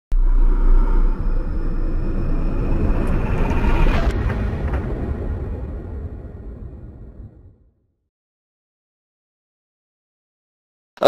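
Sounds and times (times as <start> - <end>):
cinematic hit: 0.1 - 7.6
deep rumble: 0.1 - 8.0.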